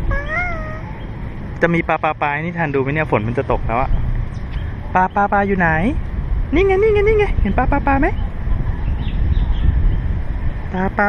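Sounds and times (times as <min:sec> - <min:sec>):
toddler wordless call: 0:00.0 - 0:01.0
low background rumble: 0:00.0 - 0:11.0.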